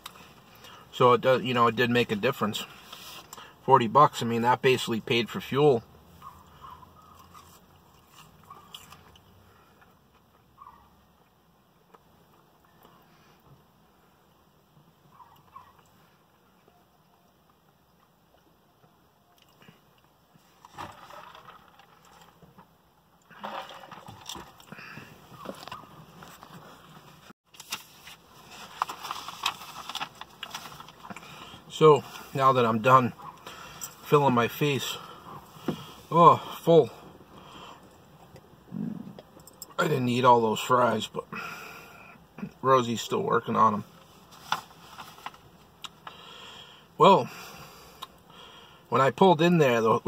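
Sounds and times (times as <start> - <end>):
faint chewing: 6.2 - 10.8
food packaging crinkling: 27.5 - 31.4.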